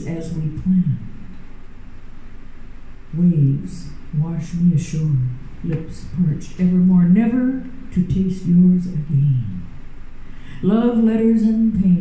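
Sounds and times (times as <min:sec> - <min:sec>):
faint low hum: 0:00.0 - 0:12.0
room noise hiss: 0:00.0 - 0:12.0.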